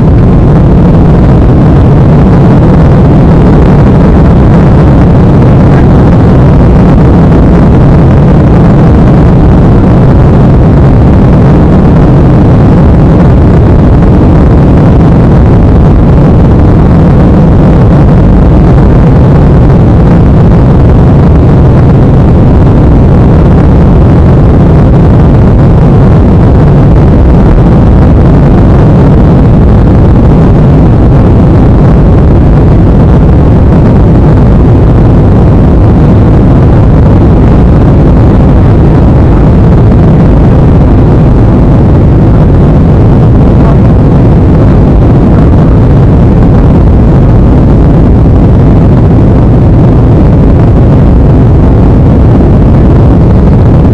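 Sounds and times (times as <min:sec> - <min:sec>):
jet engines rumbling in cabin: 0:00.1 - 0:53.7.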